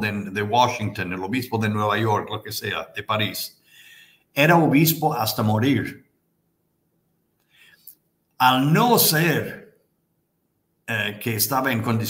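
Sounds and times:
faint short breath: 3.6s - 4.3s, 7.4s - 7.9s.

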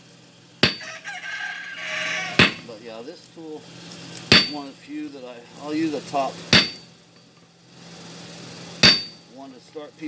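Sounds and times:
hammer striking steel on anvil: 0.6s - 0.9s, 2.4s - 2.6s, 4.3s - 4.7s, 6.5s - 6.9s, 8.8s - 9.2s
rooster crowing: 0.7s - 2.6s.

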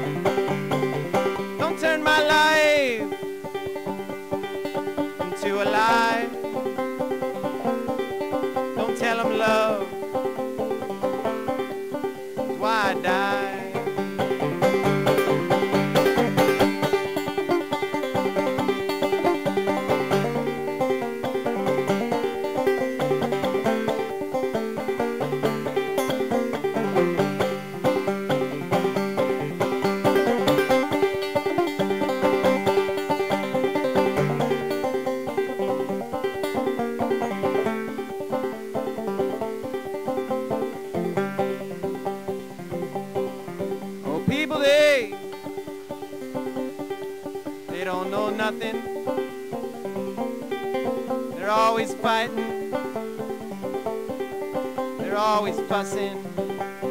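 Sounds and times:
banjo picking: 0.0s - 56.9s.

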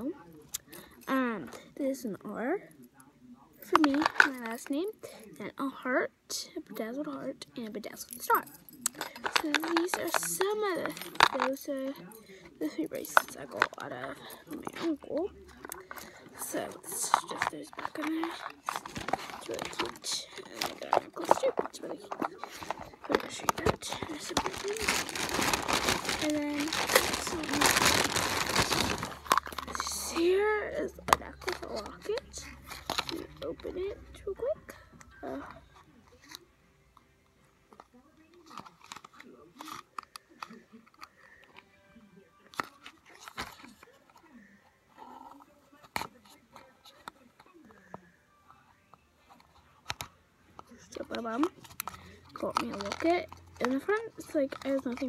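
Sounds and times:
hand handling phone microphone: 8.8s - 12.0s, 13.1s - 29.8s.

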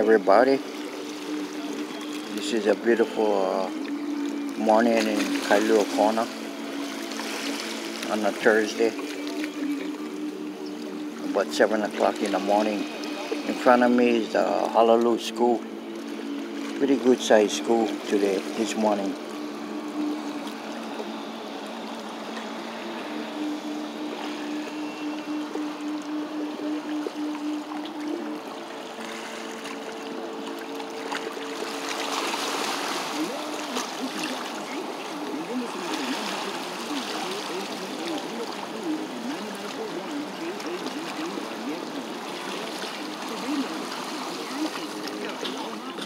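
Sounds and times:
low hum: 0.0s - 46.0s
water lapping against sea wall: 0.0s - 46.0s
faint voices: 33.0s - 46.0s.

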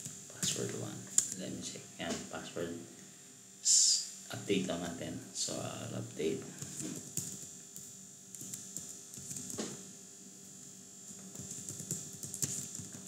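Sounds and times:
steady high hiss: 0.0s - 13.0s.

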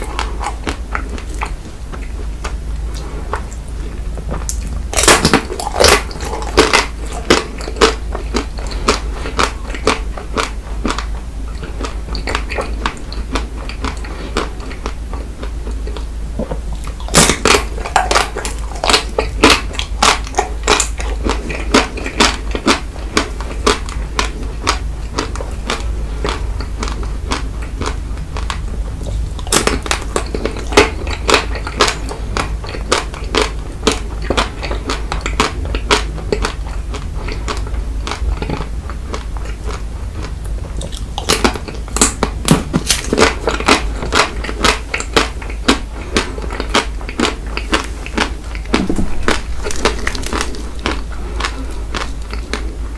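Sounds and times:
crunchy chewing: 0.0s - 52.9s
soft mouth sounds: 0.0s - 52.9s.

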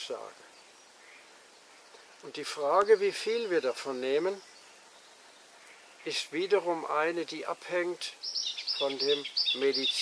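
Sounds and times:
outdoor background noise: 0.0s - 10.0s
man speaking: 2.2s - 4.4s, 6.1s - 8.2s, 8.8s - 10.0s.

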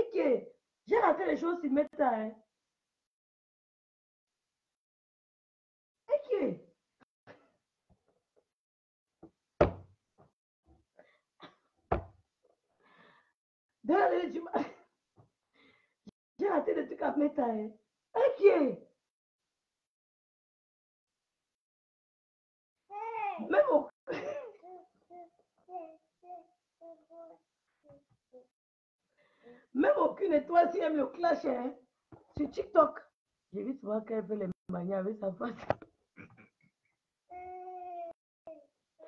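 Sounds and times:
knocks: 9.6s - 9.9s, 11.9s - 12.1s.

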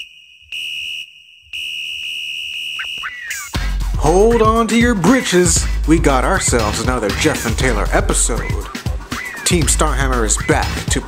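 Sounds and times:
long steady electronic beep: 0.0s - 3.6s
brief rising chirp: 2.7s - 3.7s.

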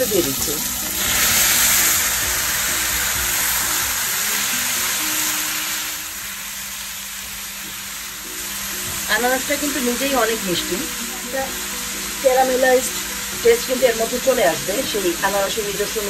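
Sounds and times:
food sizzling in hot oil: 0.0s - 16.0s.

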